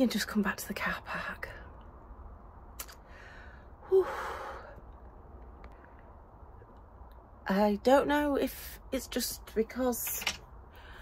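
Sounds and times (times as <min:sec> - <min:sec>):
woman sighing: 0:03.8 - 0:04.8.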